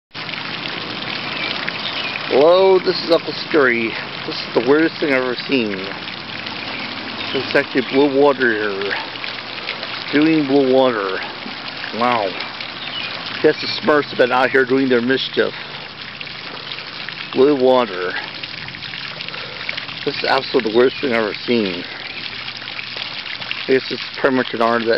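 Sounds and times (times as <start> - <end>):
fountain water splashing: 0.1 - 24.9.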